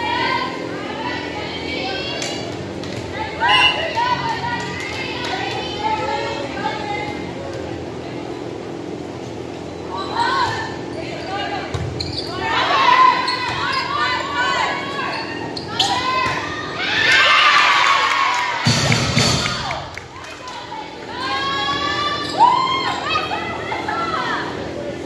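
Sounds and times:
players shouting and calling: 0.0 - 8.0, 9.8 - 24.8.

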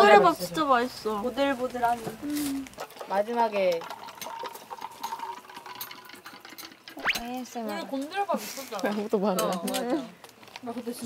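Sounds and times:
juice glugging from bottle: 2.7 - 7.2.

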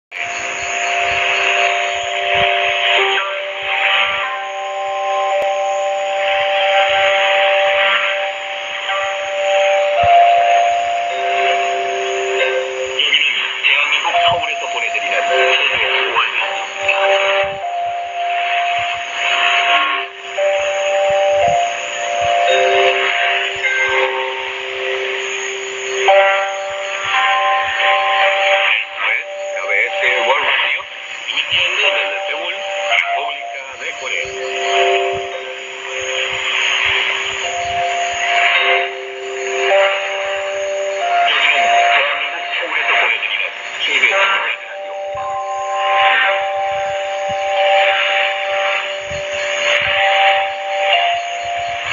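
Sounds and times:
radio melody of long notes: 0.0 - 51.9
static crackles: 0.0 - 51.9
radio hiss: 0.1 - 51.9.

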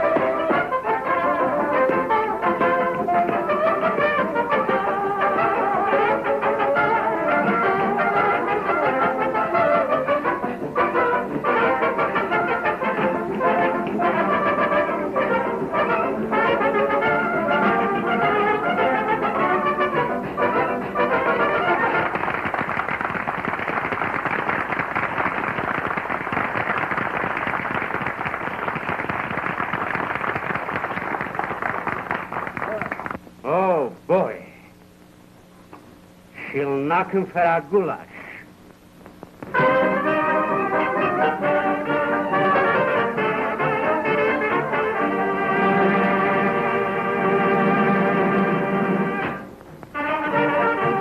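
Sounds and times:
muffled brass dance orchestra: 0.0 - 33.0, 39.4 - 51.0.

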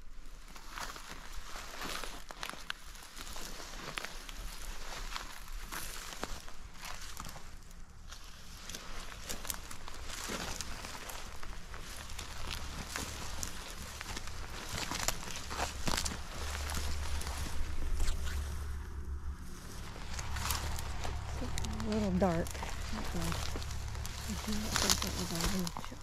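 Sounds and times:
footsteps through dry grass: 0.0 - 26.0.

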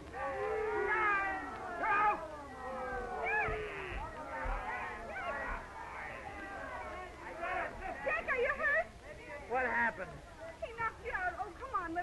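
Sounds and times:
crowd yelling: 0.0 - 8.4.

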